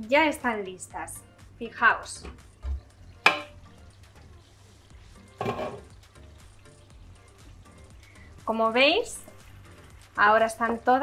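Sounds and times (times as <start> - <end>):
soft background music: 0.0 - 11.0
glass lid knocking on pan: 3.2 - 3.6, 5.4 - 5.9.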